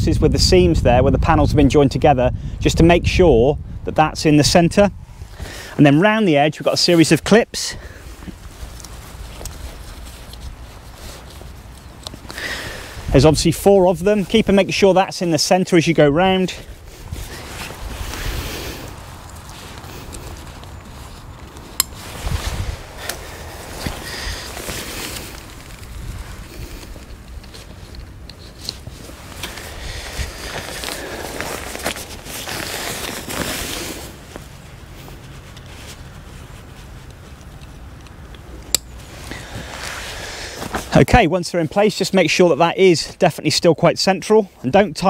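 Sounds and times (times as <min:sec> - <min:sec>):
fabric canopy rustling: 0:04.2 - 0:45.0
footsteps on grass: 0:07.8 - 0:15.4, 0:16.0 - 0:41.2.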